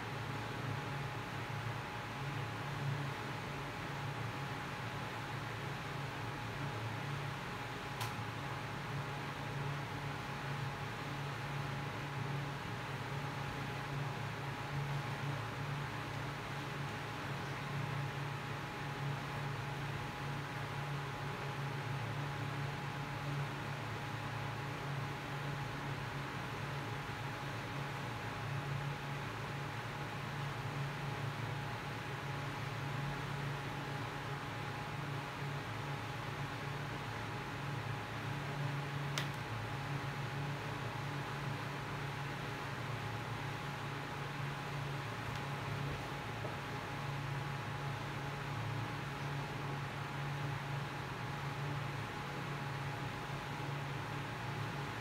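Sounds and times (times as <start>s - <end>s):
thin steady whine: 0.0s - 55.0s.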